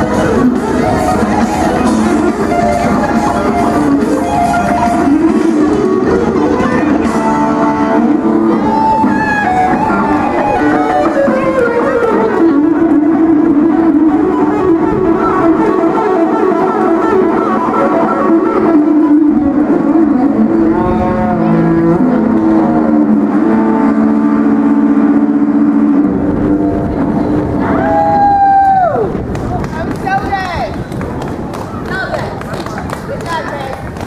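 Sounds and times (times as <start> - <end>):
electric guitar lead: 0.0 - 29.4.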